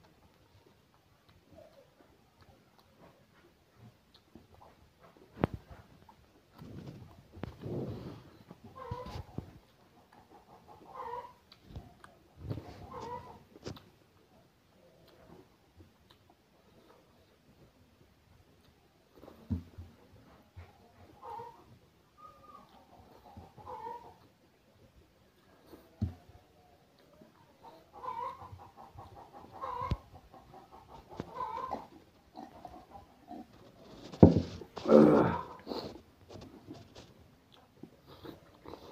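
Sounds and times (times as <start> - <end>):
chewing: 0.0 - 38.9.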